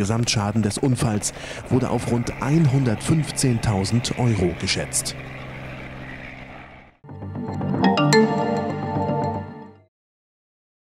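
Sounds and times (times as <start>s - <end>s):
helicopter engine and rotor: 0.0s - 7.0s.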